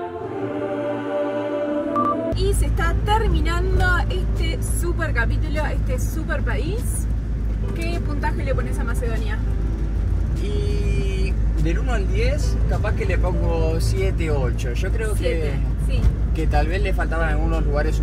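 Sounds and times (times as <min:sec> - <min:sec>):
engine and road rumble: 0:01.9 - 0:18.0
two people talking: 0:10.3 - 0:18.0.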